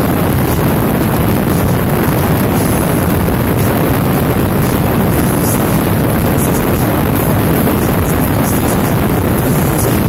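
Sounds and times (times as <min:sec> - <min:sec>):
motorcycle engine: 0:00.0 - 0:10.0
wind rushing on microphone: 0:00.0 - 0:10.0.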